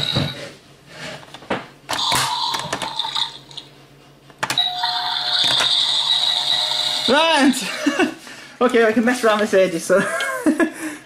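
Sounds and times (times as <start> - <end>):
electronic toy sound: 2.0 - 3.4, 4.6 - 7.5
electronic doorbell sound: 4.6 - 7.1.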